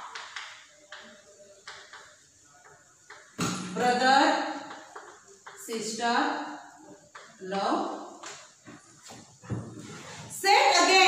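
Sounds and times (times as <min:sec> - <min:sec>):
chalk knocking and scraping on blackboard: 0:08.2 - 0:10.4.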